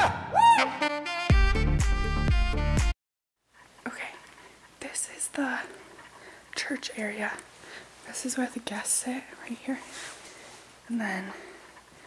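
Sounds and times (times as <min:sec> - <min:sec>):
person whispering: 0:03.8 - 0:05.8, 0:06.6 - 0:07.5, 0:08.1 - 0:09.9.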